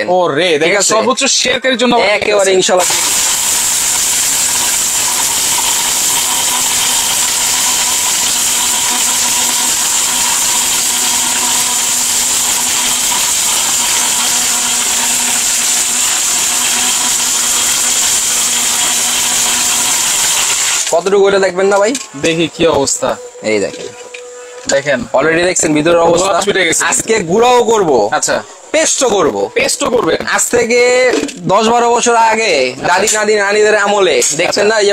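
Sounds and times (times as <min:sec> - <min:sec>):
mixer grinder running: 0:02.8 - 0:21.0.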